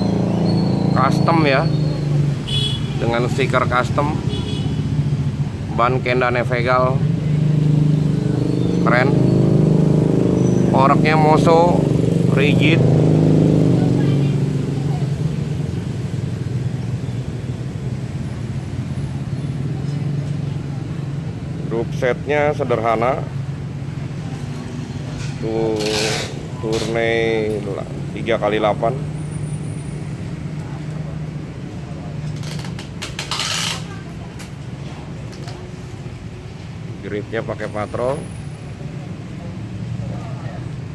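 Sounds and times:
low hum of traffic: 0:00.0 - 0:40.9.

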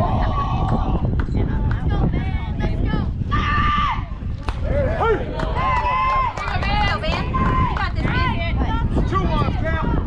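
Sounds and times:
wind rumble on microphone: 0:00.0 - 0:10.0.

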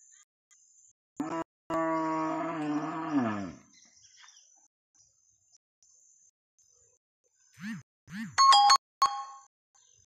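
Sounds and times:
cow mooing: 0:01.2 - 0:03.6.

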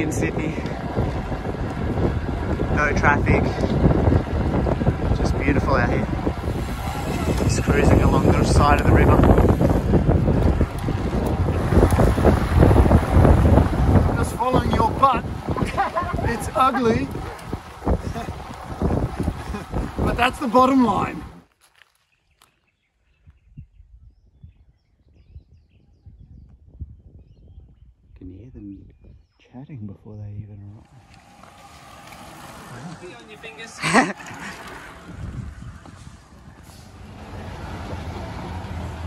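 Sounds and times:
wind buffeting microphone: 0:00.0 - 0:21.4, 0:22.7 - 0:39.0.

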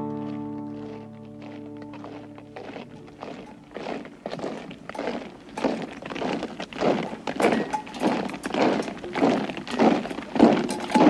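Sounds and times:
heavy crunching footsteps: 0:00.0 - 0:11.0.

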